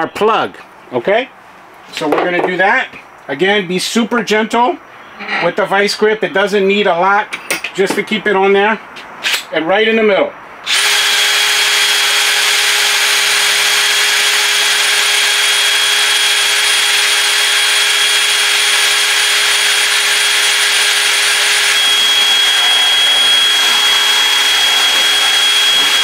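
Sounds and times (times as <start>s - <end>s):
cordless drill whining: 10.7s - 26.0s.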